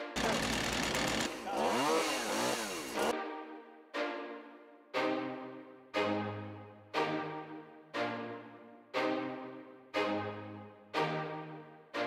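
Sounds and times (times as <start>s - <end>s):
chainsaw revving: 0.0s - 3.1s.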